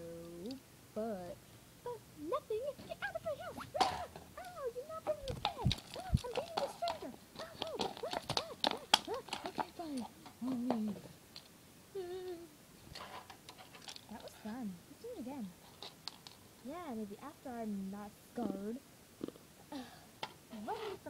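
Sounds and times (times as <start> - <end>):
toys clicking and knocking: 2.8 - 11.6, 12.9 - 14.6.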